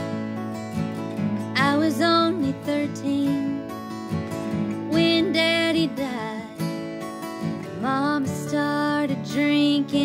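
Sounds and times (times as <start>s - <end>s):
acoustic guitars playing country song: 0.0s - 10.0s.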